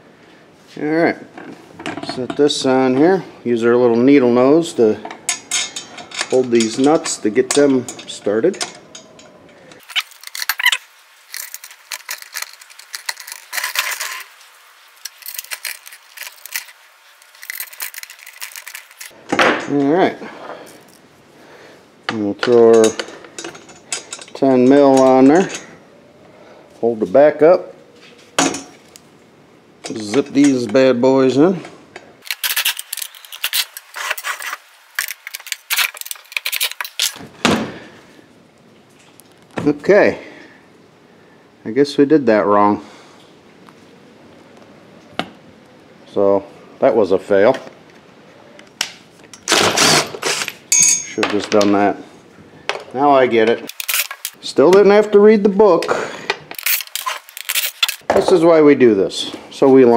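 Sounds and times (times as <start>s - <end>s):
metal nuts and pliers clinking: 5.0s - 19.9s, 22.1s - 25.7s, 32.2s - 37.2s, 49.3s - 51.8s, 53.5s - 54.4s, 55.8s - 58.0s.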